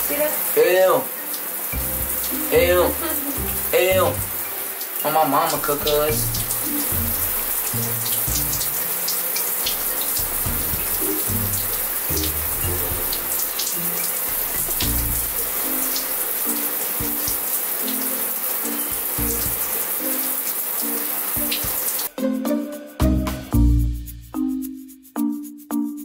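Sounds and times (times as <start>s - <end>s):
shower spray running: 0.0s - 22.1s
background music: 0.0s - 26.0s.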